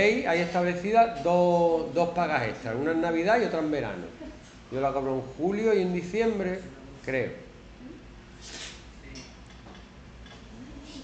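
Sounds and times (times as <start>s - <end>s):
faint murmur of distant voices: 10.3s - 11.0s.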